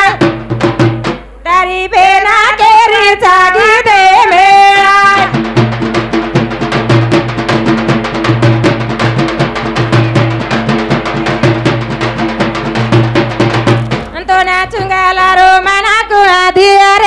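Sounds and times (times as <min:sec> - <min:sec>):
fast drumming: 0:00.0 - 0:01.3, 0:02.9 - 0:16.0.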